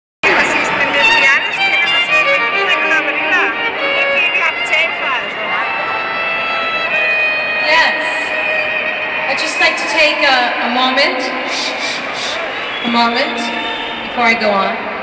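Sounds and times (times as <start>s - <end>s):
audience voices: 0.2s - 15.0s
live band music: 0.2s - 15.0s
violin wavering melody: 0.3s - 12.5s.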